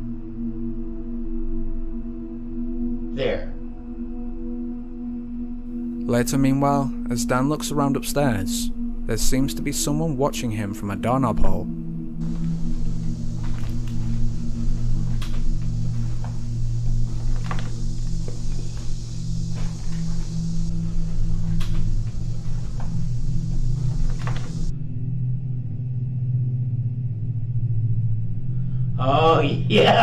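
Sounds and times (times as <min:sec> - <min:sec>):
low droning ambient music: 0:00.0 - 0:30.0
hiss: 0:12.2 - 0:24.7.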